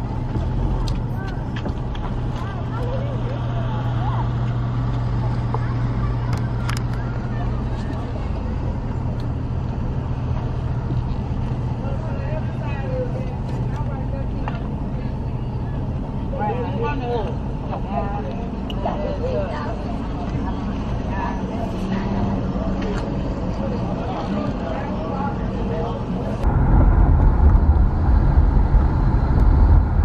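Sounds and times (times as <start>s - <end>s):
people talking in background: 0.0s - 26.5s
vehicle engine idling: 0.0s - 30.0s.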